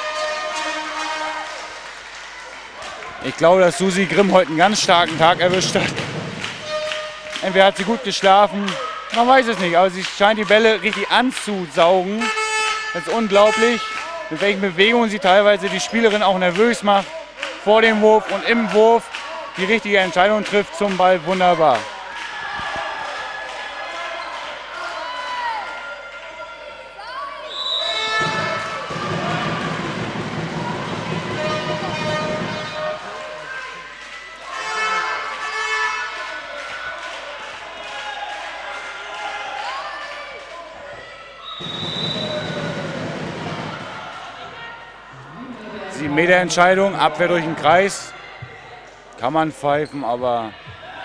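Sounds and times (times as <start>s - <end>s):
voices from bench and stands: 0.0s - 51.0s
players calling: 3.2s - 22.0s, 27.5s - 33.6s, 41.4s - 48.6s
ball bouncing on hall floor: 4.7s - 7.1s.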